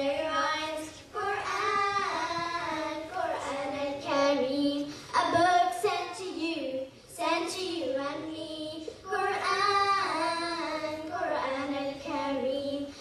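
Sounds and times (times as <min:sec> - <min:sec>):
children singing together: 0:00.0 - 0:13.0.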